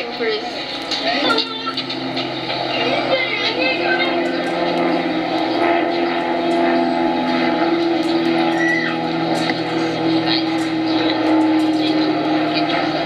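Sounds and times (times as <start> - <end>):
faint scattered voices: 0.0 - 13.0
steady low hum: 0.0 - 13.0.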